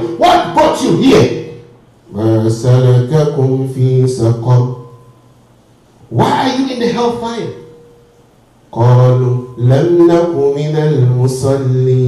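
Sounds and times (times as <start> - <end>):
man chanting melodically: 0.0 - 5.2, 6.0 - 7.8, 8.7 - 12.0.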